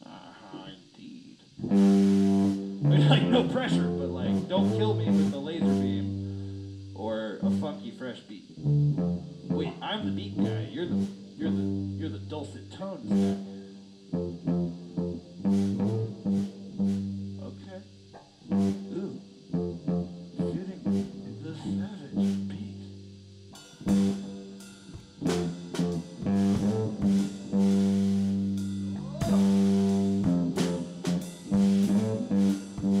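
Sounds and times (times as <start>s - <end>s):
electric guitar ringing low notes: 1.6s - 7.9s, 8.5s - 33.0s
cymbal crashes: 23.4s - 33.0s
drum hits: 23.6s - 33.0s.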